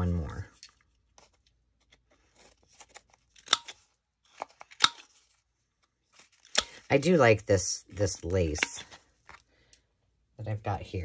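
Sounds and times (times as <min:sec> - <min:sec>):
paper rustling: 0:00.6 - 0:06.8
corner punch crunching snaps: 0:03.4 - 0:03.8.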